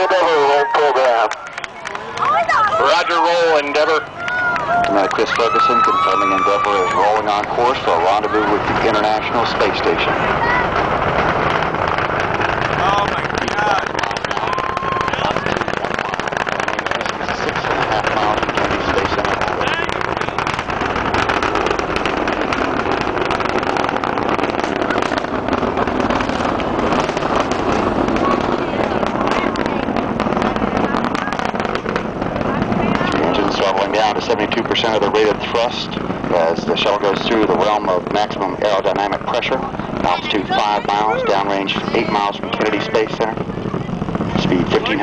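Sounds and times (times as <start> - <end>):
faint voices: 0.0 - 45.0
rocket launch rumble with crackling: 0.0 - 45.0.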